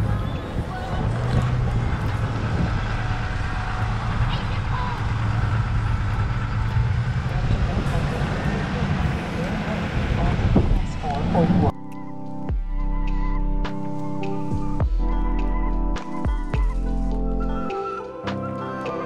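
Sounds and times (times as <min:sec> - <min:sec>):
road noise hiss: 0:00.0 - 0:11.7
engine and tyres droning: 0:00.0 - 0:11.8.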